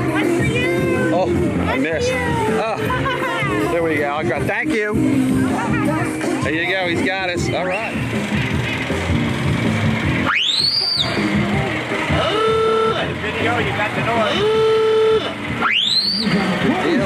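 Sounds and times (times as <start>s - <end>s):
background music: 0.0s - 17.0s
voices: 0.0s - 17.0s
klaxon horn whooping: 7.7s - 17.0s.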